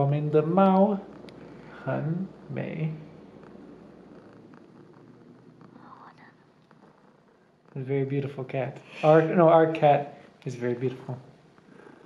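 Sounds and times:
cat purring softly: 0.0s - 12.0s.

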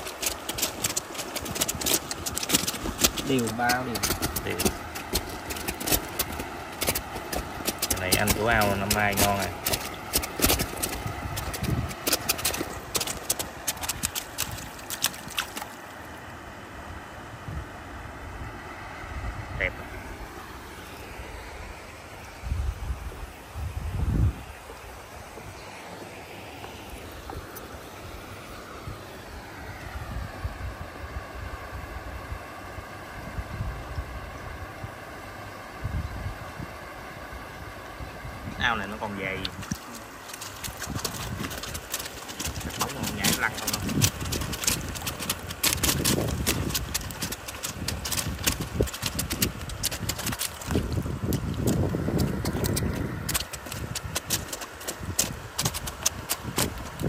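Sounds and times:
wind buffeting microphone: 0.0s - 15.6s, 22.3s - 25.6s, 28.8s - 32.4s, 33.2s - 35.0s, 35.7s - 36.9s, 37.6s - 57.0s
steady outdoor noise: 0.0s - 57.0s.

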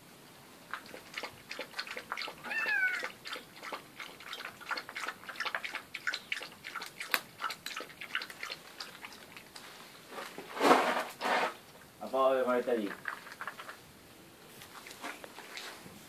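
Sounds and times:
cat meowing: 2.4s - 3.2s.

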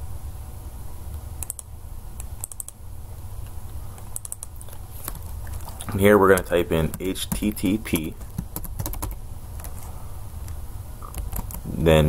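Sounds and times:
steady low hum: 0.0s - 12.0s
keyboard keys clicking: 1.4s - 2.8s, 4.0s - 9.7s, 11.0s - 11.6s.

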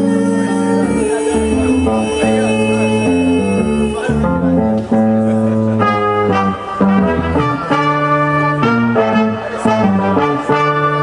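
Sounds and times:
live band playing jazz: 0.0s - 11.0s
sousaphone bass line: 0.0s - 11.0s.

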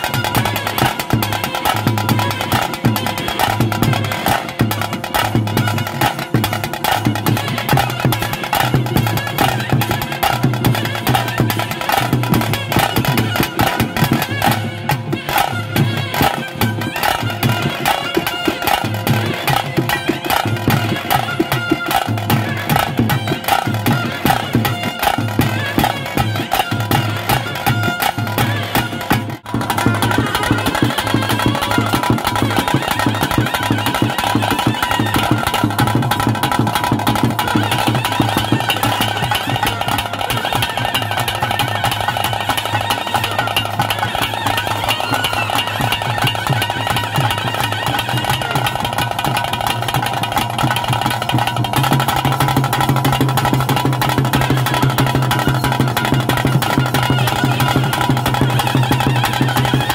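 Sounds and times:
double-reed pipe melody: 0.0s - 59.9s
stick-beaten drums: 0.0s - 59.9s.

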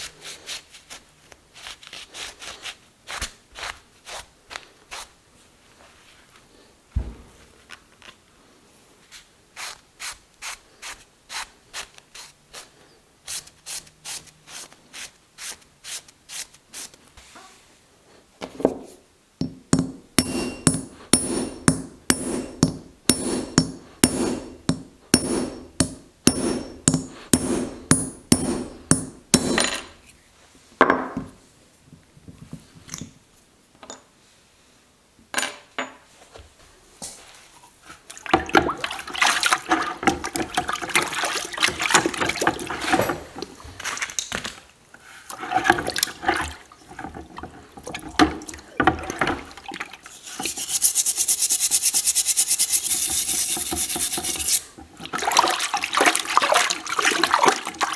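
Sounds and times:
water sloshing in bucket: 38.1s - 44.0s, 45.3s - 50.1s, 54.9s - 57.9s
rag rubbing metal: 50.3s - 54.7s.

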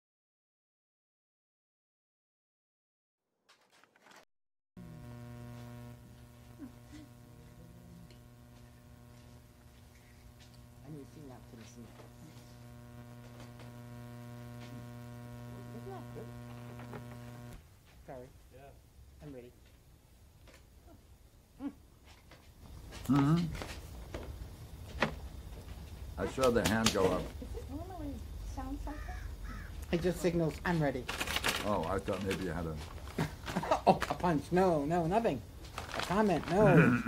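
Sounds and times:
electrical mains hum: 4.8s - 37.0s
crow cawing: 28.8s - 30.0s.

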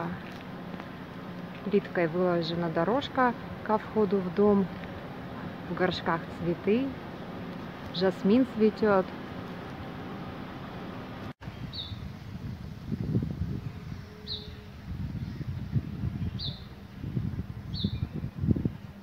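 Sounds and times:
small bird chirping: 11.5s - 12.1s, 13.0s - 14.6s, 15.2s - 16.7s.

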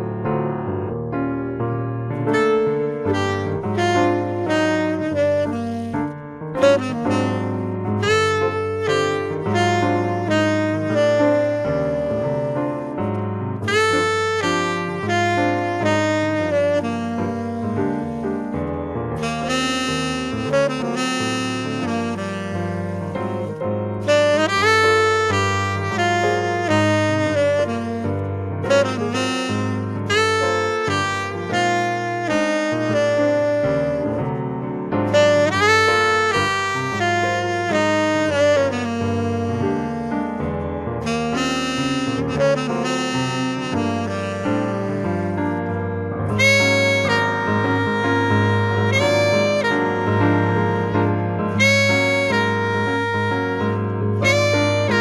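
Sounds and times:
grand piano accompaniment: 0.0s - 55.0s
tenor saxophone jazz melody: 0.0s - 55.0s.

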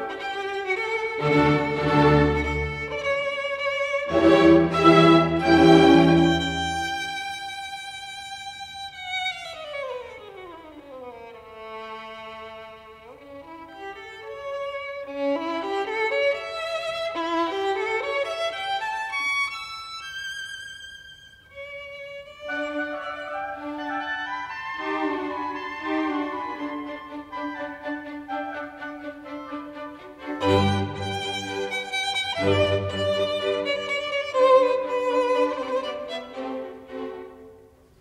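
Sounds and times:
violin music: 0.0s - 38.0s.

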